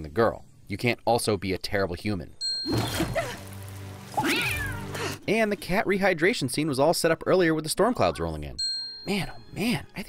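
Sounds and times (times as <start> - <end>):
cat meowing: 4.2 - 5.0.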